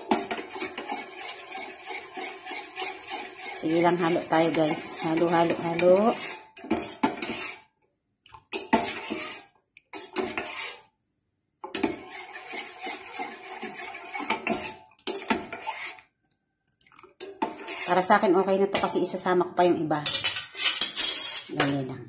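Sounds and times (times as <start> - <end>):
metal spoon scraping saucepan: 0.0 - 7.7, 8.5 - 10.9, 11.6 - 16.1, 17.2 - 19.2, 20.1 - 21.8.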